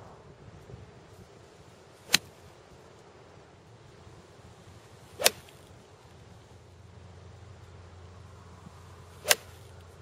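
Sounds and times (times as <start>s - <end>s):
golf iron striking ball: 5.2s - 5.6s, 9.1s - 9.7s.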